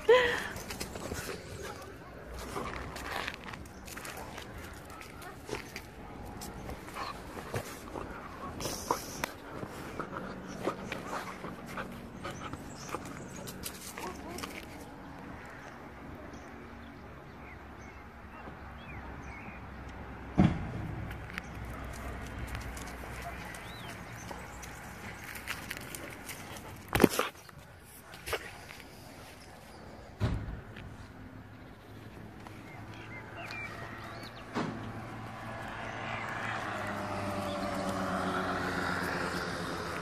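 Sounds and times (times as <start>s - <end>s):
footsteps and paws on gravel: 0.0s - 15.7s, 21.0s - 30.1s, 30.7s - 40.0s.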